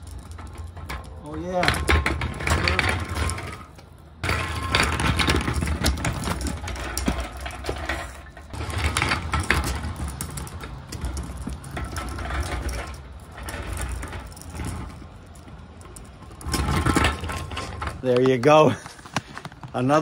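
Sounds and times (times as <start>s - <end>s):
casters rolling over rough concrete: 0.0s - 20.0s.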